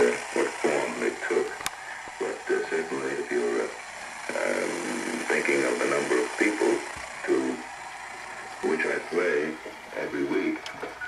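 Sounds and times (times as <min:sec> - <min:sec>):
man speaking over radio: 0:00.0 - 0:07.6, 0:08.6 - 0:10.7.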